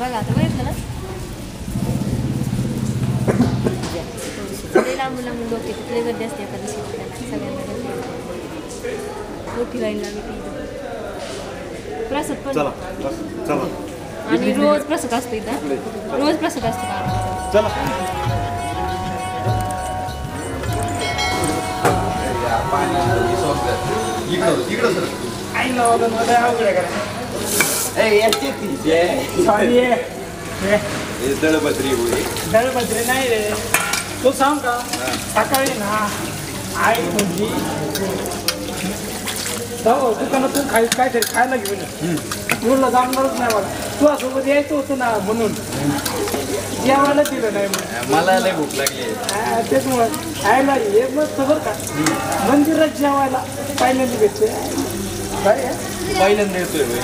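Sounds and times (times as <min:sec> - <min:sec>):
voices talking: 0:14.6 - 0:27.3
men talking: 0:16.4 - 0:38.4
tap water splashing on steel plate: 0:32.1 - 0:39.6, 0:40.4 - 0:44.3, 0:47.0 - 0:50.2
tap water splashing on steel: 0:33.5 - 0:36.2.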